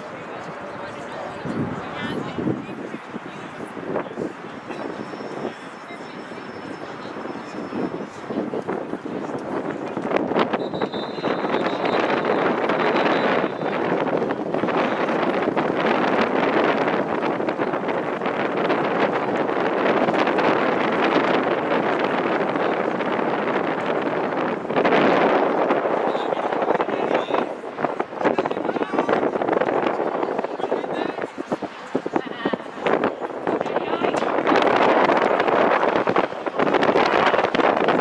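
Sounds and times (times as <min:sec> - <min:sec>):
wind blowing across microphone: 0:00.0 - 0:38.0.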